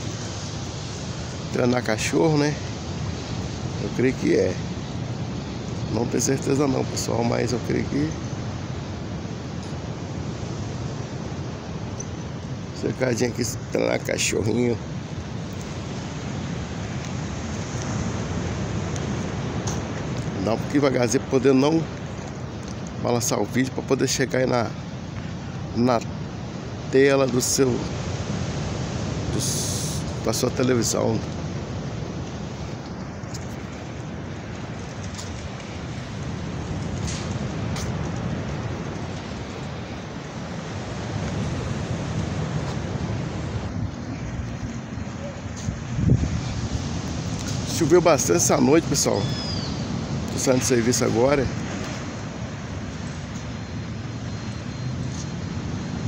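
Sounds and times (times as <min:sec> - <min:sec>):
ocean surf: 0:00.0 - 0:56.0
wind on microphone: 0:24.8 - 0:56.0.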